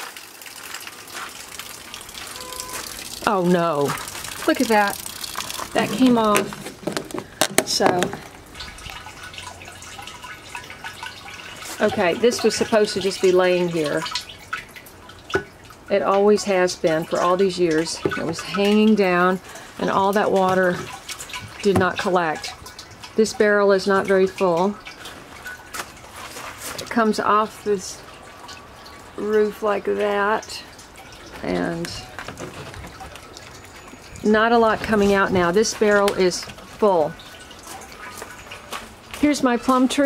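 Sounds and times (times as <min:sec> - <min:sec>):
rainwater trickling into barrel: 0:00.0 - 0:40.0
water drips: 0:00.0 - 0:40.0.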